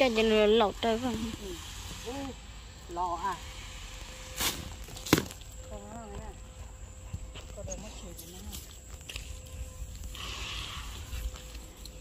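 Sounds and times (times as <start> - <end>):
footsteps on dry soil: 4.0 - 12.0.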